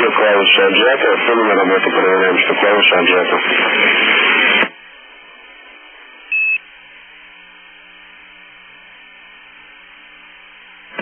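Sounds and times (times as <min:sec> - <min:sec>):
faint radio hiss: 0:00.0 - 0:11.0
loud single-pitch beep: 0:06.3 - 0:06.6.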